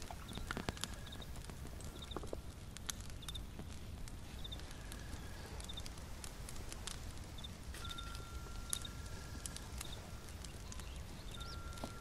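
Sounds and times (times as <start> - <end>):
sharp clicks and crackles: 0.0 - 12.0
faint trill: 7.4 - 12.0
thin whistle-like tone: 7.4 - 12.0.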